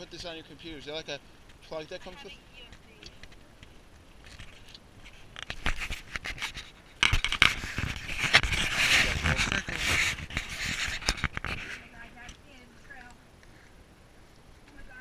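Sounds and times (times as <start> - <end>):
rough scraping with sharp clicks: 2.6 - 12.4
fingers rubbing on camera: 4.2 - 12.0.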